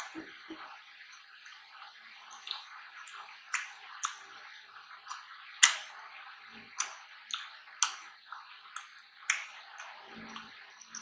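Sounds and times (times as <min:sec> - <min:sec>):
mouth chewing fries: 0:02.2 - 0:04.4.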